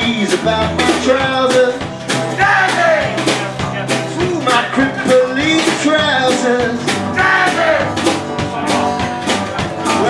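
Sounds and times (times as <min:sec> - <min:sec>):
person singing: 0:00.0 - 0:03.4, 0:04.1 - 0:10.0
strummed acoustic guitar: 0:00.0 - 0:10.0.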